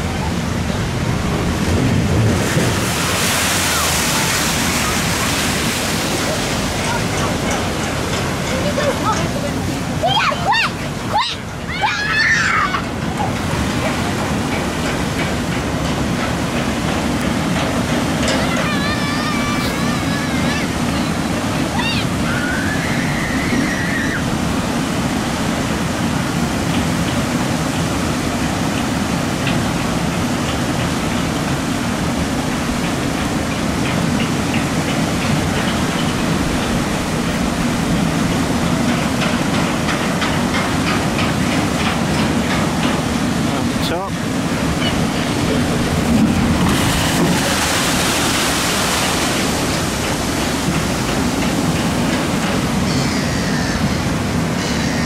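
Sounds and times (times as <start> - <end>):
loud water hiss: 0.0 - 8.4, 18.8 - 40.2, 45.4 - 55.0
water rushing and splashing: 0.0 - 55.0.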